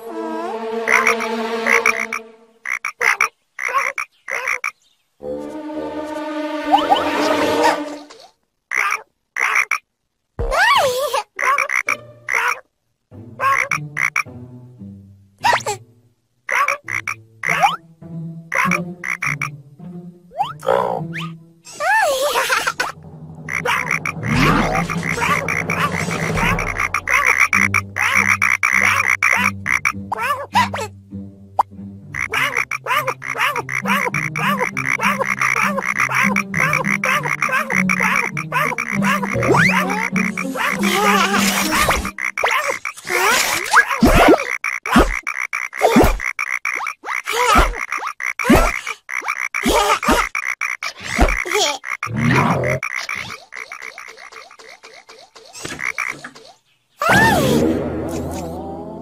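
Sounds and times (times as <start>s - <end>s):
cartoon frogs croaking: 0.4s - 5.5s, 8.7s - 12.7s, 13.3s - 14.4s, 16.4s - 17.8s, 18.5s - 19.6s, 20.3s - 30.9s, 31.6s - 59.0s.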